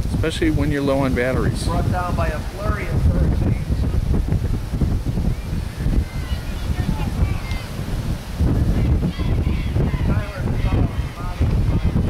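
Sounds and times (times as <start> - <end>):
wind buffeting microphone: 0.0 - 12.0
faint distant voices: 0.2 - 12.0.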